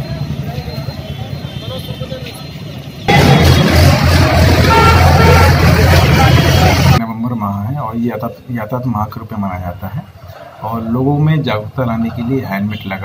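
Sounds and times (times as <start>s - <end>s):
vehicle traffic: 0.0s - 7.0s, 9.6s - 13.0s
voices: 0.0s - 13.0s.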